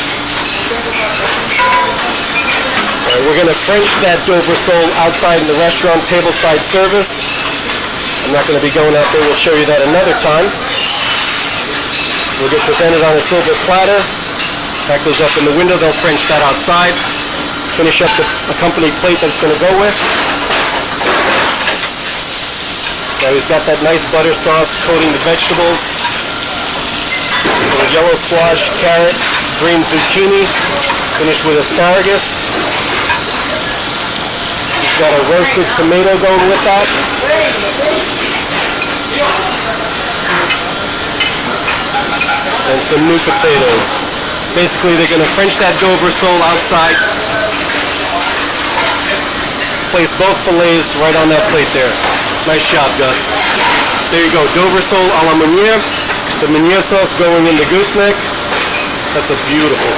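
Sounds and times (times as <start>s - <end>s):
steady hiss: 3.0s - 41.8s
vegetables sizzling in a pan: 21.5s - 27.3s.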